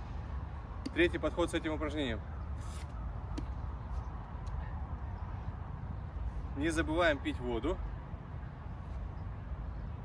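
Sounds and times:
low outdoor rumble: 0:00.0 - 0:01.4.

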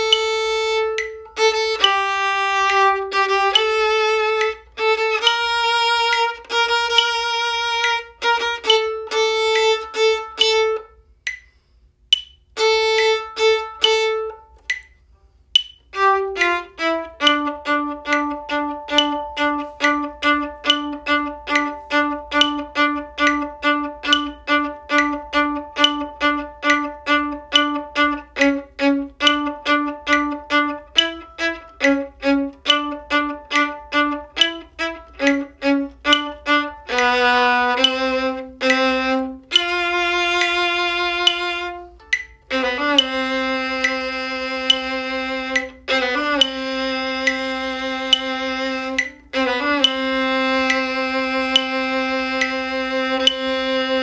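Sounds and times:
slow metronome ticking: 0:00.0 - 0:54.0
bowed string bass notes: 0:15.6 - 0:54.0.

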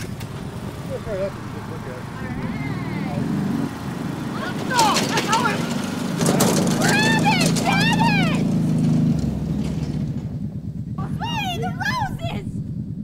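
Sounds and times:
riding lawn mower engine running: 0:00.0 - 0:13.0
high-pitched cries: 0:06.8 - 0:08.4.

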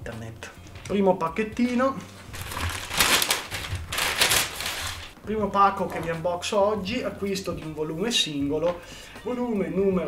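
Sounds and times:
padded envelope tearing open: 0:02.3 - 0:05.2.

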